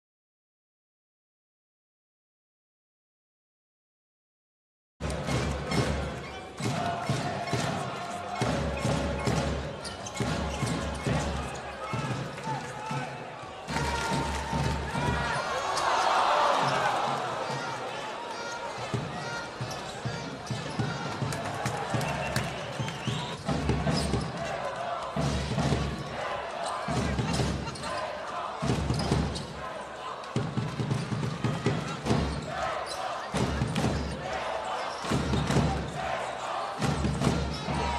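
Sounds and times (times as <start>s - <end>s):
arena crowd voices: 5.0s - 37.9s
voices: 31.4s - 37.9s.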